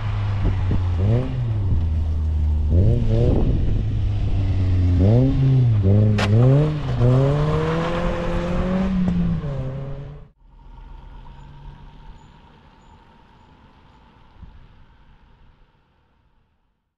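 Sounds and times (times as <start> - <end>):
car engine revving: 0.0 - 15.8
car driving away hum: 0.0 - 16.5.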